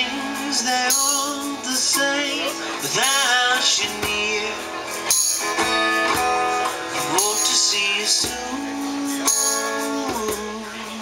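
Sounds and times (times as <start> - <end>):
man singing: 0.0 - 5.0, 6.5 - 11.0
percussion strikes: 0.0 - 10.9
acoustic guitar strumming: 0.0 - 11.0.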